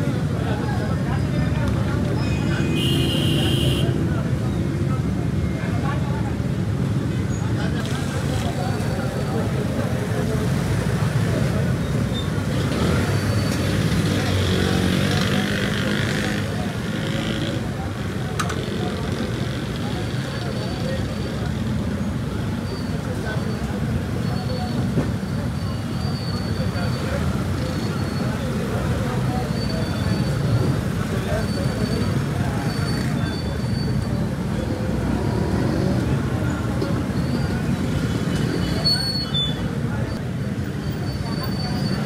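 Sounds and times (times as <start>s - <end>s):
people talking: 0.0s - 42.0s
road traffic: 0.0s - 42.0s.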